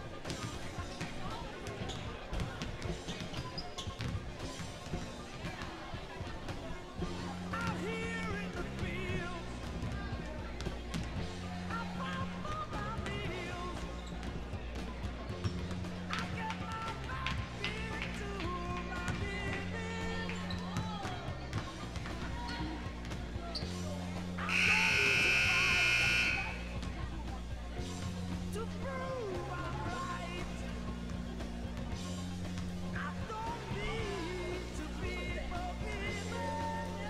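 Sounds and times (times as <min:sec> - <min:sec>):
background music with steady beat: 0:00.0 - 0:37.0
basketballs bouncing on gym floor: 0:01.0 - 0:04.2
scoreboard buzzer: 0:24.5 - 0:26.7.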